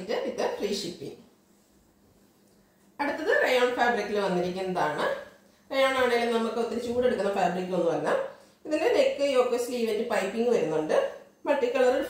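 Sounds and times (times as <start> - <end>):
woman talking: 0.0 - 1.3, 3.0 - 12.0.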